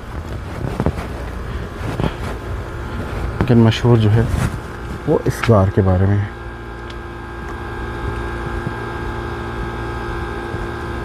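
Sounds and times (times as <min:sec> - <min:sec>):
machine hum: 0:00.0 - 0:11.0.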